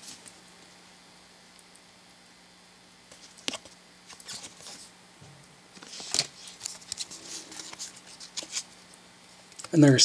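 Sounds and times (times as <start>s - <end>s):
trading cards rustling: 3.1s - 4.9s, 5.8s - 8.8s.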